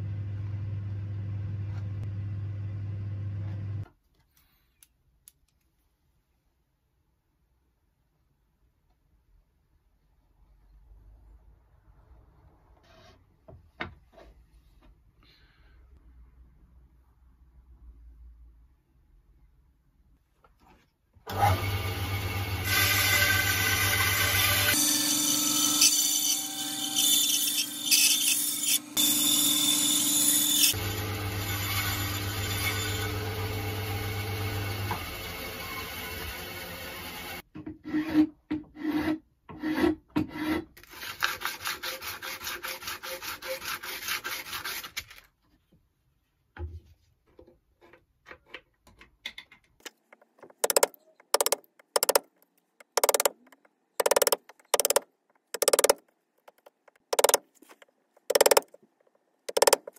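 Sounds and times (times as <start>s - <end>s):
bandsaw cutting wood: 50.4s - 58.8s, 59.5s - 59.9s.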